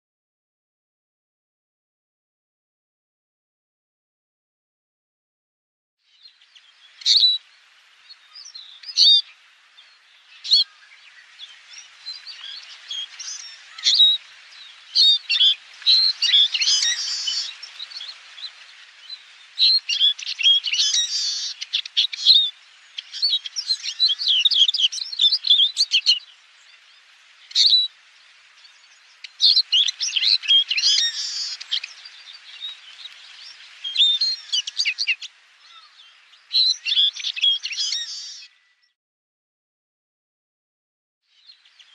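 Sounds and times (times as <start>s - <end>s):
birds twittering and chirping: 6.1s - 39.0s, 41.3s - 41.9s.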